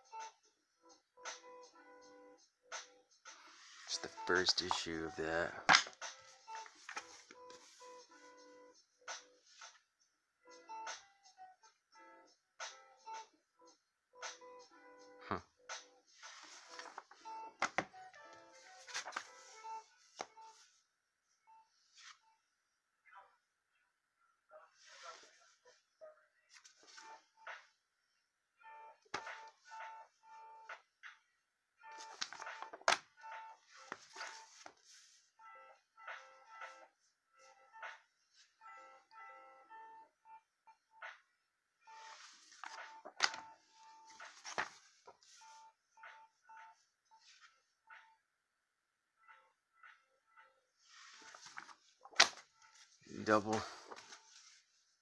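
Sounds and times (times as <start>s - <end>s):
paper rustles: 16.2s - 17.2s, 18.6s - 19.6s, 32.0s - 33.0s, 42.0s - 43.4s, 44.1s - 45.4s, 50.9s - 53.0s, 53.6s - 54.8s.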